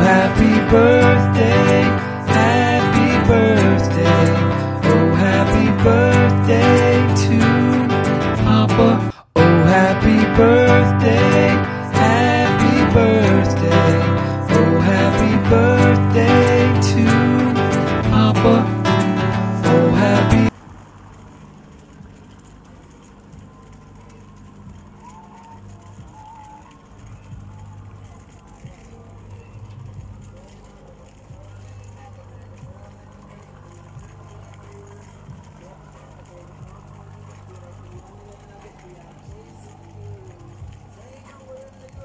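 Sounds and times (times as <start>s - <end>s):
faint music: 0.0s - 42.0s
steady low hum: 0.0s - 42.0s
faint distant voices: 21.9s - 42.0s.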